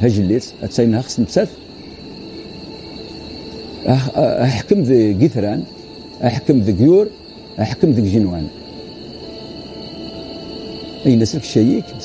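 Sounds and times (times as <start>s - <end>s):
faint low drone: 0.0s - 12.0s
steady high-pitched trill: 0.0s - 12.0s.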